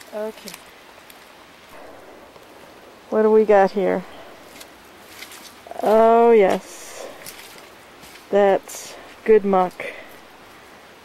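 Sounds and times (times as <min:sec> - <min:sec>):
faint forest ambience hiss: 0:00.0 - 0:11.0.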